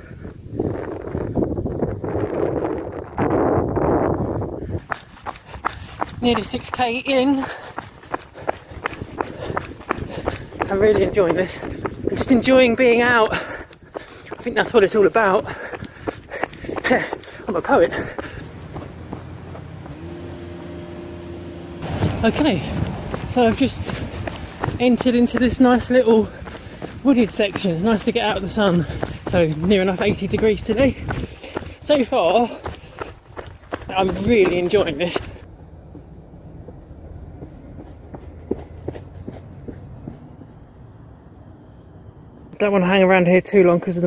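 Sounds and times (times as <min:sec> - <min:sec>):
footsteps on dirt path: 0:04.6 - 0:21.1, 0:21.8 - 0:40.8
low engine rumble: 0:13.4 - 0:42.6
low steady rumble: 0:18.4 - 0:25.6, 0:35.4 - 0:42.5.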